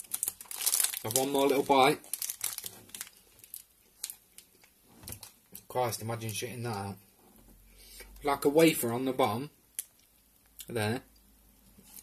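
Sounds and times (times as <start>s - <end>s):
wrapper handled: 0.0s - 5.7s.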